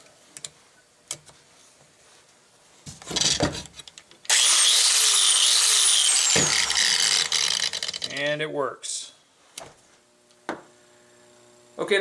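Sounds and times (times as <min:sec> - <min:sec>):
angle grinder running: 0:04.3 - 0:08.3.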